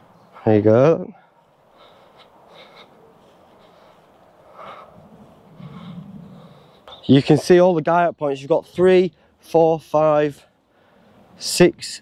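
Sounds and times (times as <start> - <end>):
soft breathing: 1.1 - 7.1, 10.4 - 11.4.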